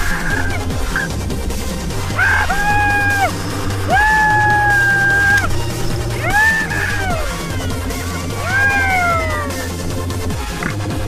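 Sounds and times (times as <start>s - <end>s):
background music with steady beat: 0.0s - 11.0s
person whooping: 2.2s - 5.5s, 6.1s - 9.7s.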